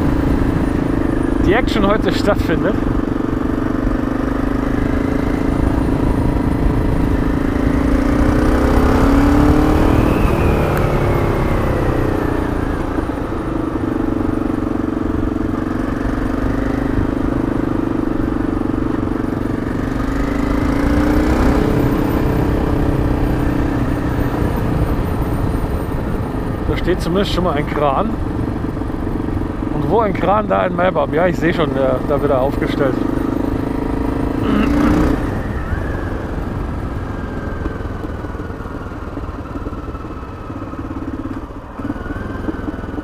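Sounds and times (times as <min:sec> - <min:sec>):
motorcycle engine revving: 0:00.0 - 0:43.0.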